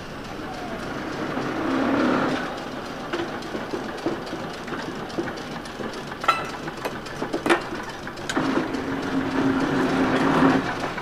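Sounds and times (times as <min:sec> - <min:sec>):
loud wheel clack: 0:00.0 - 0:11.0
trolley car rumble: 0:00.0 - 0:11.0
wheels clicking over rail joints: 0:00.0 - 0:11.0.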